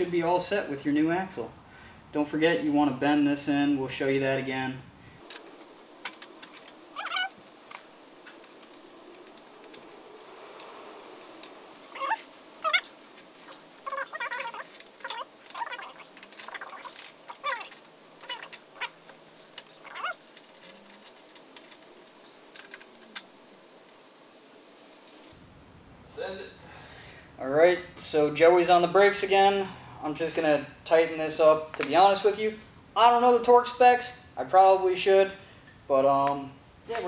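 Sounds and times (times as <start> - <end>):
clinks of tools and metal parts: 5.2 - 10.0, 10.6 - 24.2, 35.6 - 35.9
squeaky rising and falling tones: 6.9 - 7.8, 11.8 - 19.0, 19.7 - 20.2.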